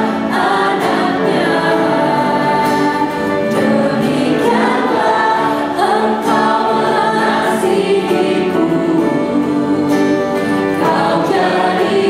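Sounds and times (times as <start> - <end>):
man and woman singing along: 0.0 - 12.0
piano and keyboard accompaniment: 0.0 - 12.0.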